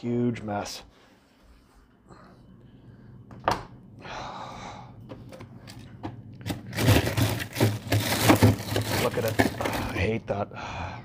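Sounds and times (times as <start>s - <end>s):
freezer shelves clicking and knocking: 5.1s - 10.1s
plastic bags rustling and clattering: 5.6s - 10.1s.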